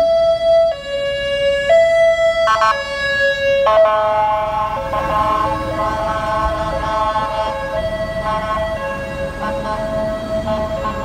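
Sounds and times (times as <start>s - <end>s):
two-tone ambulance siren: 0.0s - 11.0s.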